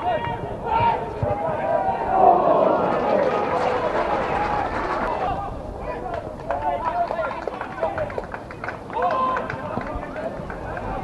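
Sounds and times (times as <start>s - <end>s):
people shouting and calling: 0.0s - 6.0s.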